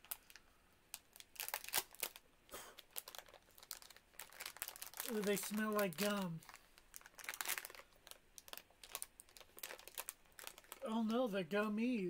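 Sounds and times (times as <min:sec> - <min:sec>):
plastic wrapper crinkling: 0:00.0 - 0:11.8.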